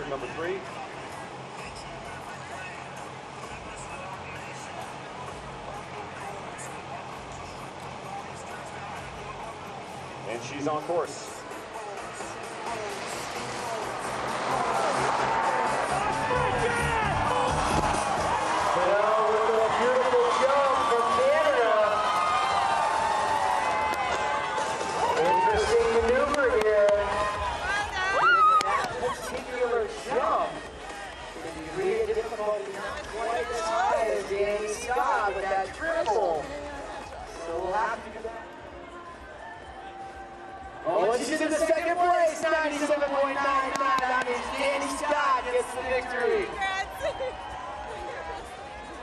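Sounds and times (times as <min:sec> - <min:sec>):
faint music from loudspeakers: 0:00.0 - 0:49.0
murmur of distant voices: 0:00.0 - 0:49.0
crowd cheering: 0:12.0 - 0:49.0
people shouting and whooping: 0:14.4 - 0:31.4, 0:42.9 - 0:49.0.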